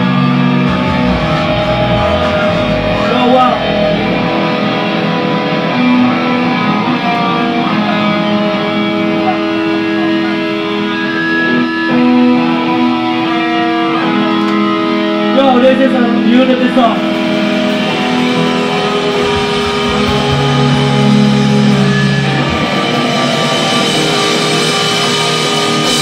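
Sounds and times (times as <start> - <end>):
electric guitar ringing notes: 0.0 - 26.0.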